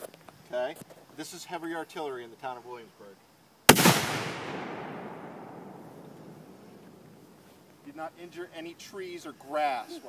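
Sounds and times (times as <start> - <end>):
cannon blast echo and rumble: 3.7 - 7.2.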